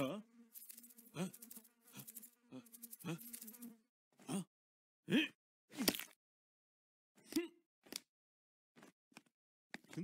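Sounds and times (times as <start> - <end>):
housefly buzzing: 0.0 - 3.9
man grunting: 5.1 - 5.4.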